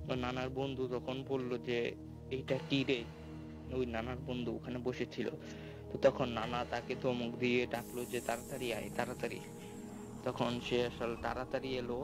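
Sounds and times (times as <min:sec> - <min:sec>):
man speaking: 0:06.0 - 0:09.6, 0:10.2 - 0:12.0
high steady hiss: 0:06.8 - 0:12.0.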